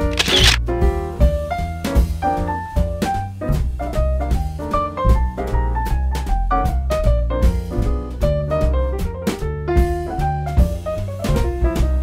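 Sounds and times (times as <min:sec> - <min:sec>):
jazzy piano bass and drums music: 0:00.0 - 0:12.0.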